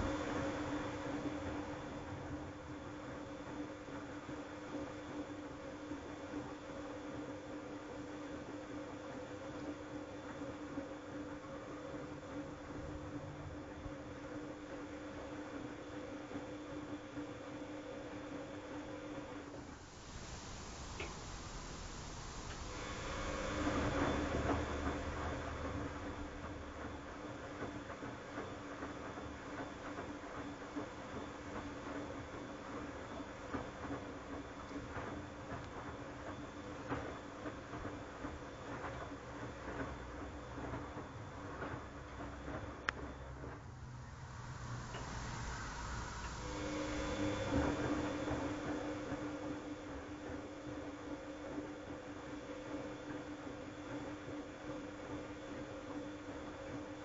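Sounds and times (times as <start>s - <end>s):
washer drum motor humming: 19.5s - 29.5s, 40.0s - 50.4s.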